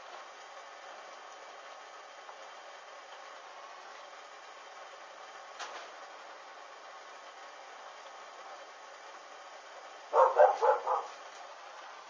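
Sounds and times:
dog barking: 10.1s - 11.2s.

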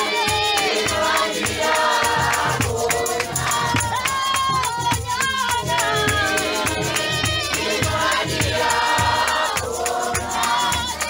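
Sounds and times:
congregation singing: 0.0s - 11.0s
steady beat of strikes: 0.0s - 11.0s.

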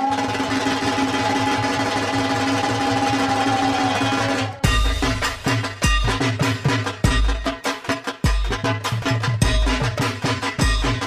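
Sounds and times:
drum roll and deep drum strokes: 0.0s - 11.0s.

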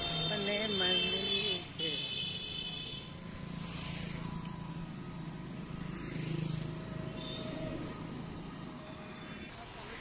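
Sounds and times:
road vehicle passing: 3.0s - 9.5s.

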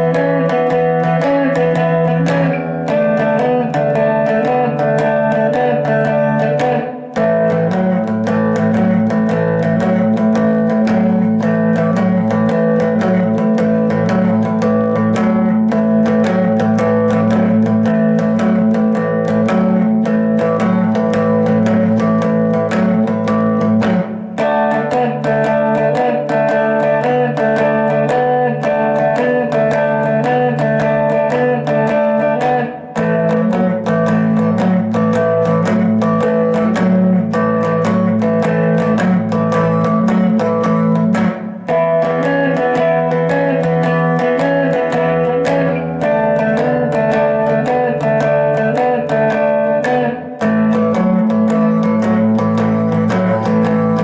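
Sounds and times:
electric guitar blues shuffle riff: 0.0s - 54.0s.

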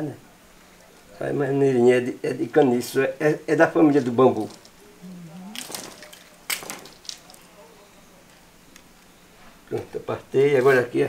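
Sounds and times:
cane cracking: 3.9s - 9.1s.

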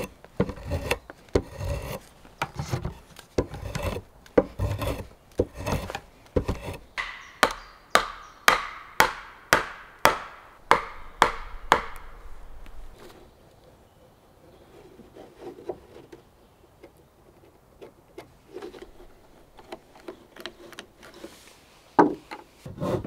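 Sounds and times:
rasping on wood: 0.0s - 12.0s
sharp tool strikes: 6.4s - 12.1s.

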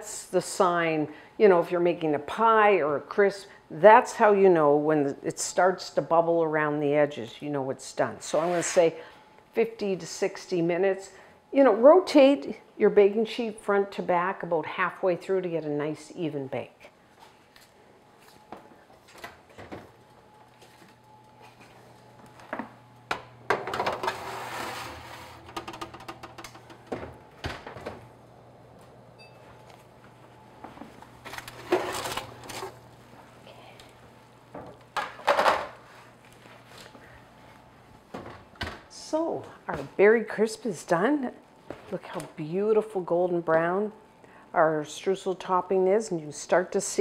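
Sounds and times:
low steady hum: 0.0s - 47.0s
metal knocking and scraping on oven rack: 23.5s - 27.1s.

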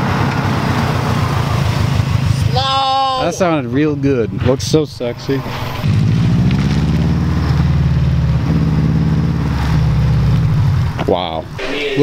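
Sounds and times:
car engine and exhaust: 0.0s - 12.0s.

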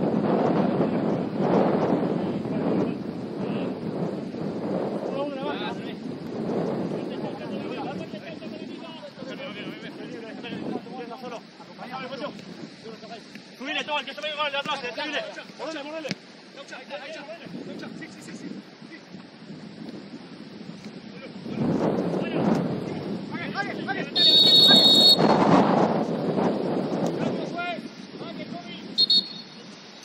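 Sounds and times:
wind on microphone: 0.0s - 13.3s, 17.4s - 29.9s
players shouting: 23.4s - 25.2s
referee's pea whistle blast: 24.2s - 25.3s, 29.0s - 29.6s.

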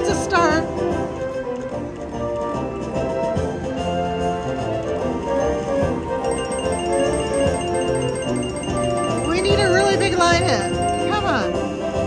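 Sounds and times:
slot reels spinning: 6.2s - 11.5s
slot machine bonus music: 6.2s - 11.6s.

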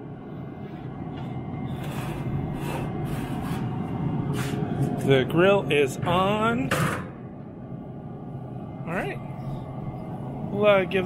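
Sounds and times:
grill fan and fire whoosh: 0.0s - 11.0s.

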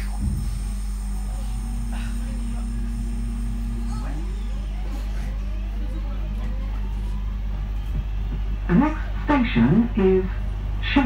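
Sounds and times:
steady low hum: 0.0s - 11.0s
train traction motors whining: 0.0s - 11.0s.

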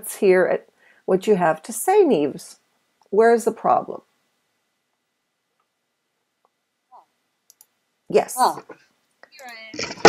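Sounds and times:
computer mouse clicks: 7.5s - 7.7s.

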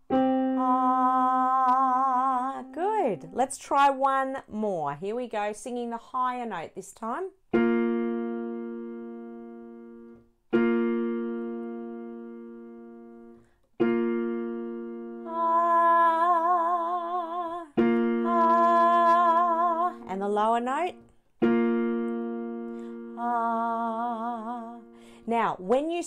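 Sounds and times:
piano notes ringing: 0.0s - 3.3s, 7.5s - 20.2s, 20.8s - 25.0s
woman singing with vibrato: 0.2s - 3.3s, 15.1s - 21.0s, 22.9s - 26.0s.

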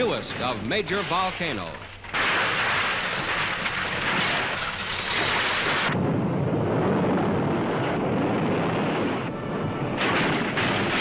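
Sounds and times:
loud steady hiss: 0.0s - 6.5s.

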